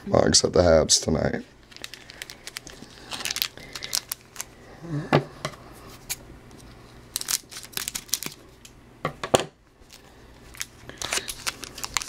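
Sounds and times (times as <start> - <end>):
wrapper crinkling: 1.6 - 4.6, 6.1 - 8.7, 9.8 - 12.0
scissors cutting wrapper: 1.7 - 4.5, 7.1 - 8.7, 10.5 - 12.0.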